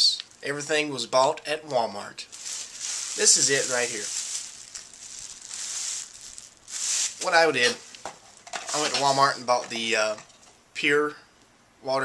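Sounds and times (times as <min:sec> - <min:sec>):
plastic bag rustling: 0:02.3 - 0:09.5.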